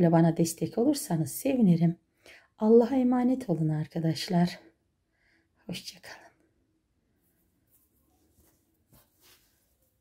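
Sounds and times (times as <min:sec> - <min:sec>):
cloth scarf rustling: 0:07.2 - 0:10.0.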